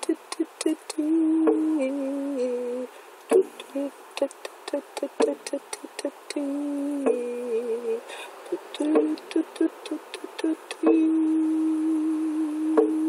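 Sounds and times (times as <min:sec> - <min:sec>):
woman humming: 0:00.0 - 0:13.0
drum beating steadily: 0:03.3 - 0:03.6, 0:08.8 - 0:09.2, 0:12.7 - 0:13.0.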